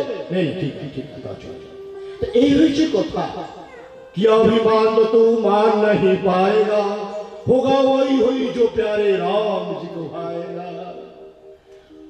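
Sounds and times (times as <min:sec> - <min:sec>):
man speaking into microphone: 0:00.0 - 0:11.1.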